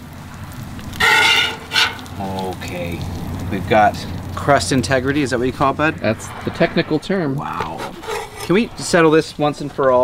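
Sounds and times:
metal spatula scraping griddle: 0.9s - 2.2s, 7.5s - 10.0s
spatula high-pitched squeal: 1.0s - 2.1s, 7.6s - 8.8s.

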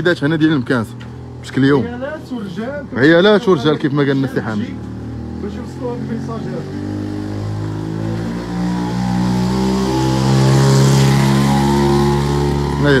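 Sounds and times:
small motorcycle engine accelerating: 4.5s - 13.0s.

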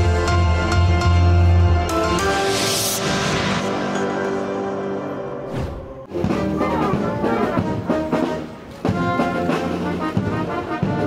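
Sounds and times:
military brass band playing: 6.0s - 11.0s.

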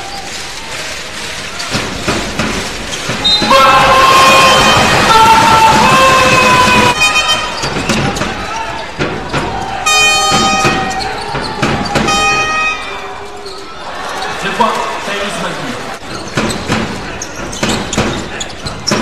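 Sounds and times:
arena crowd noise: 0.0s - 19.0s
sneakers squeaking: 1.4s - 3.8s, 6.9s - 14.6s, 15.9s - 19.0s.

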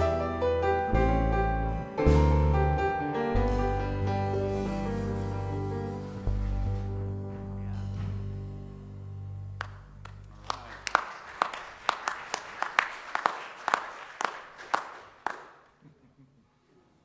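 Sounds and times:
upright bass and piano: 0.0s - 11.8s
scattered applause in a hall: 9.6s - 16.0s.

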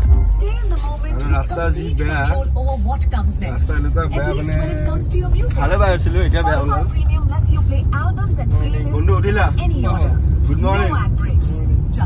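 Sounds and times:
car cabin rumble: 0.0s - 12.0s
people talking and laughing: 0.4s - 12.0s.

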